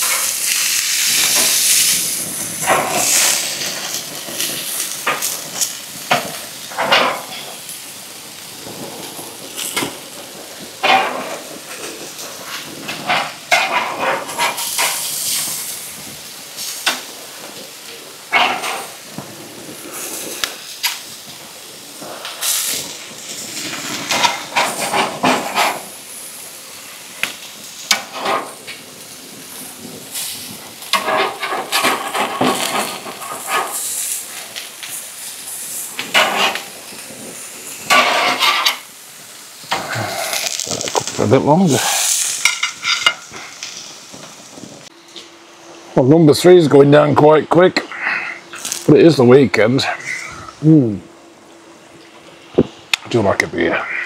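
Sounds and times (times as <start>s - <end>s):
meat sizzling on a grill: 0.0s - 54.0s
spatula scraping grill grates: 22.3s - 26.0s, 29.5s - 34.2s, 34.8s - 38.9s, 39.7s - 43.9s.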